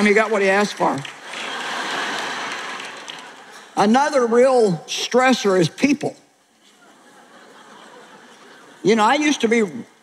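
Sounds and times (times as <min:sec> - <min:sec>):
audience applauding: 0:00.0 - 0:03.7.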